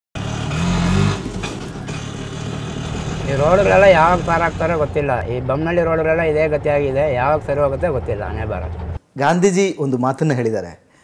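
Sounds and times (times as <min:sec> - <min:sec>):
small engine pulling away: 0:00.2 - 0:09.0.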